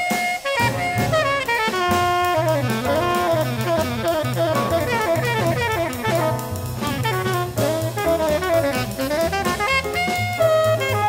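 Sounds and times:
drum kit: 0.0s - 11.0s
saxophone fast running line: 0.0s - 11.0s
walking double bass: 0.6s - 11.0s.

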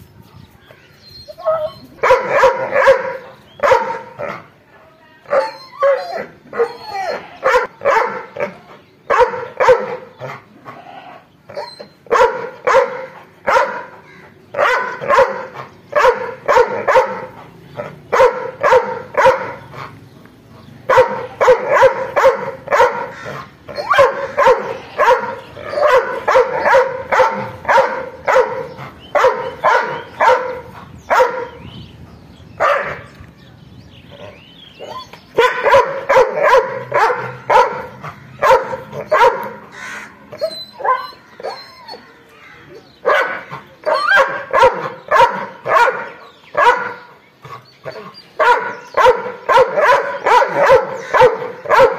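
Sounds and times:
dog barking angrily: 2.0s - 4.4s, 7.4s - 10.4s, 11.5s - 20.0s, 20.8s - 31.6s, 32.6s - 33.0s, 34.8s - 42.1s, 43.0s - 51.9s.

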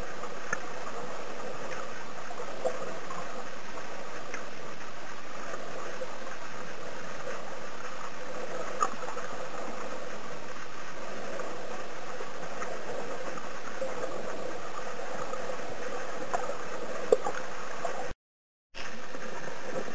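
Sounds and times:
underwater noise: 0.0s - 18.2s, 18.8s - 19.9s.

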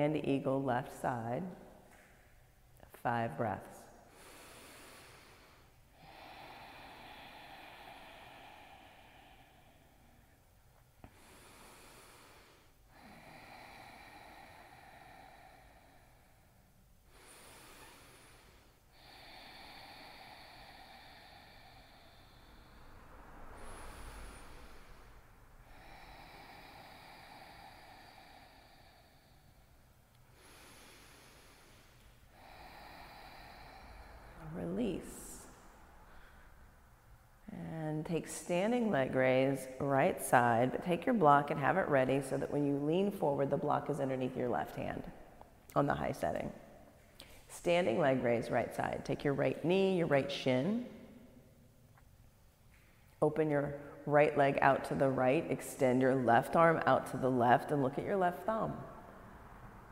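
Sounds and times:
slow breathing through nose: 4.0s - 37.4s.

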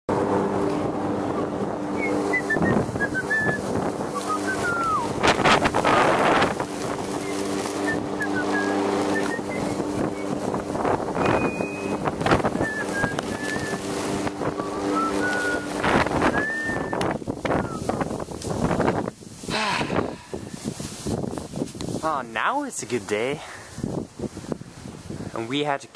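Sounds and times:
lawn mower motor humming: 0.1s - 19.4s
wind gusts on microphone: 0.1s - 25.8s.

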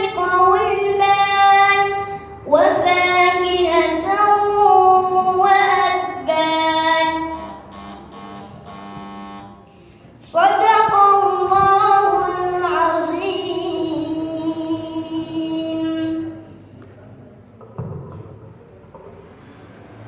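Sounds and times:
person reciting melodically: 0.0s - 7.9s, 10.2s - 16.6s.

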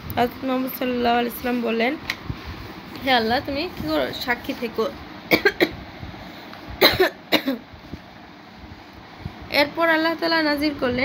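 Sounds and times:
woman coughing: 5.3s - 5.8s, 6.8s - 7.7s.

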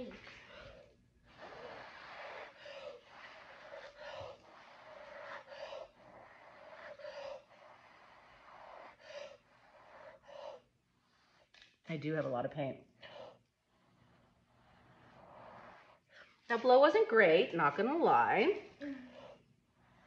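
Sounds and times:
person blowing breathy puffs: 0.0s - 11.6s, 13.0s - 16.4s
quick breaths: 0.0s - 11.8s, 12.9s - 16.5s.

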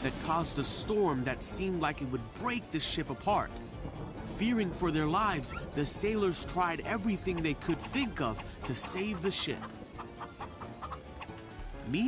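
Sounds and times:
soft background music: 0.0s - 12.0s
cartoon chicken clucking: 7.1s - 11.3s.

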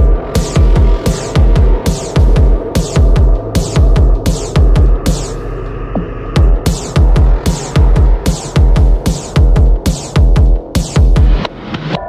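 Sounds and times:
heavy kick drum pounding: 0.0s - 5.4s, 6.0s - 11.4s
droning bassline: 0.0s - 12.0s
sharp percussion hits: 0.0s - 12.0s.

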